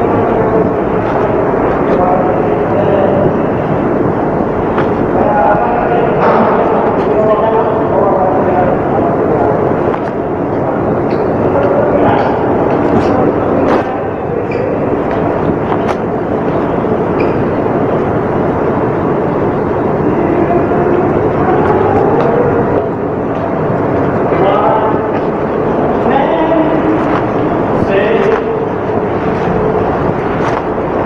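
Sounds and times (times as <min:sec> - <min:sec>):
loud machinery running: 0:00.0 - 0:31.0
person speaking: 0:00.0 - 0:31.0.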